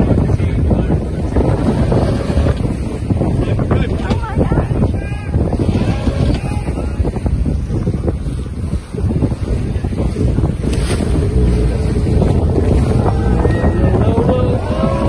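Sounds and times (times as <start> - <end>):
water rushing along hull: 0.0 - 15.0
wind buffeting microphone: 0.0 - 15.0.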